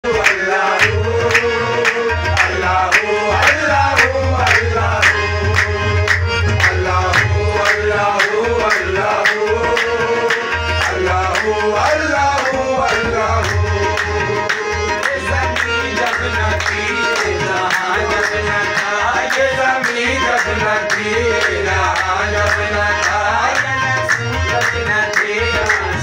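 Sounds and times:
hand percussion beat: 0.0 - 26.0
harmonium melody over drone: 0.0 - 26.0.

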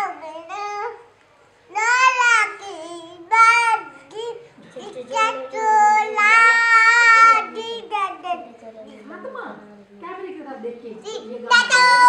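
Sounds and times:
girl singing: 0.0 - 1.0, 1.7 - 8.5, 11.1 - 12.0.

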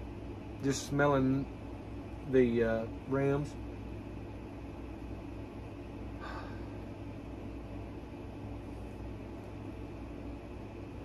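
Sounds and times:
low room hum and hiss: 0.0 - 11.0.

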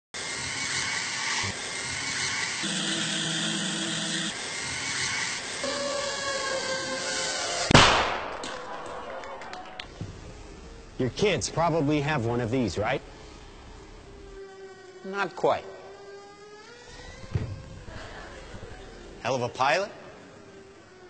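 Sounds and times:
short hums: 2.6 - 8.0.

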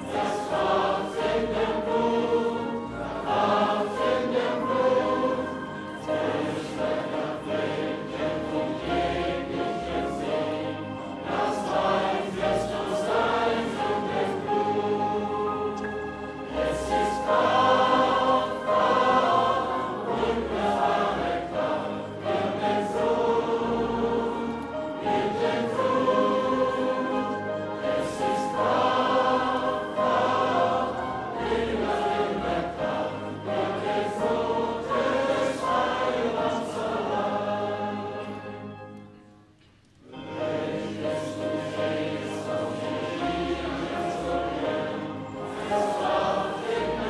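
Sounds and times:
congregation singing a hymn: 0.0 - 47.0.

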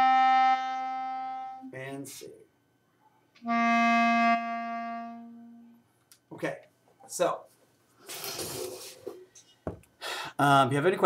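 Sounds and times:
clarinet held low note: 0.0 - 1.7, 3.4 - 5.8.

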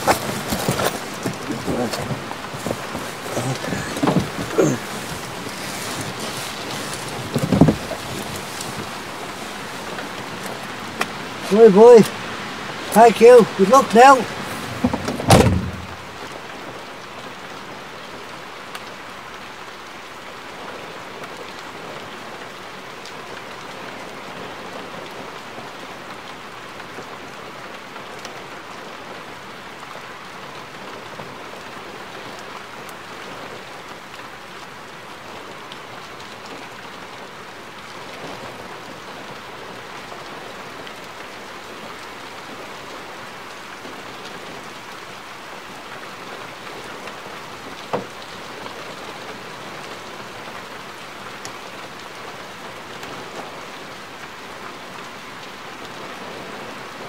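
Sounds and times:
rain on car roof: 0.0 - 57.0.

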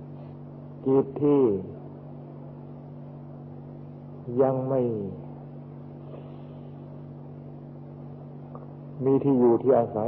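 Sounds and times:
low hum with light hiss: 0.0 - 10.0.

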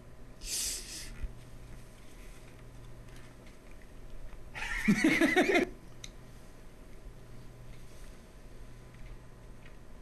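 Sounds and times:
man laughing: 4.6 - 5.8.

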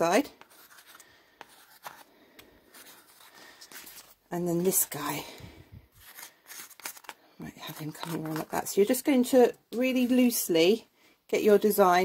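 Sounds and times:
pencil scratching on paper: 0.4 - 2.0.

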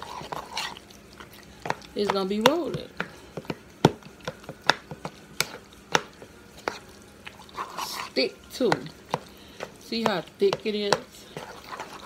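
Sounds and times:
metal utensil scraping a bowl: 7.4 - 8.2, 11.2 - 12.0.

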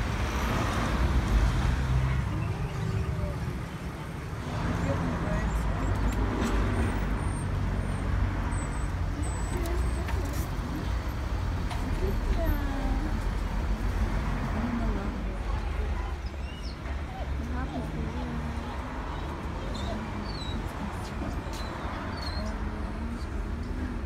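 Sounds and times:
road traffic rumble: 0.0 - 24.0
faint voices of people: 1.8 - 6.4, 9.0 - 24.0.

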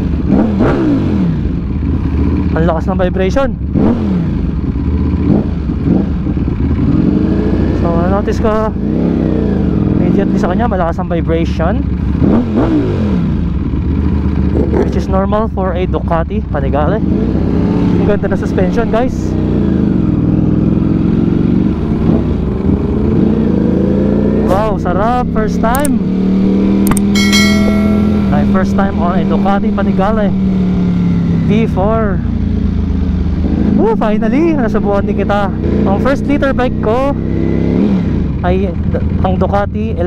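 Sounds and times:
motorcycle engine running: 0.0 - 40.0.

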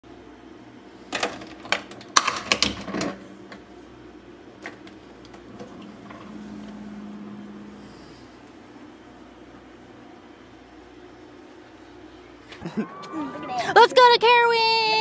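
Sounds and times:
coffee maker humming: 3.0 - 13.6.

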